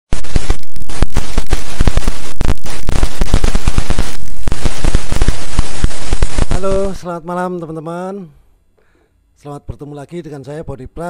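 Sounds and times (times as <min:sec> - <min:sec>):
harsh crackling noise: 0:00.0 - 0:07.8.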